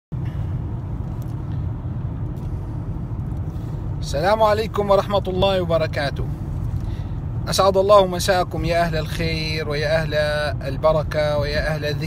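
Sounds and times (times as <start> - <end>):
car engine and road noise: 0.1 - 12.0.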